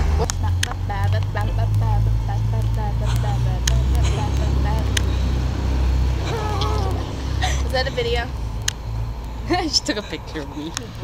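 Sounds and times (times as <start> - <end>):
women chattering and laughing: 0.0 - 8.7
road traffic rumble: 0.0 - 11.0.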